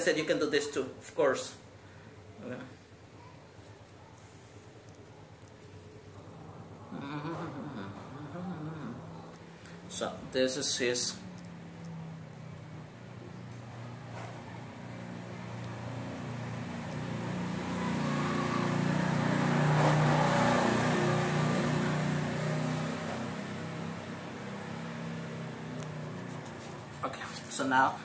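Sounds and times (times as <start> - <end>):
road noise: 4.6 - 28.0
vehicle engine hum: 5.9 - 27.1.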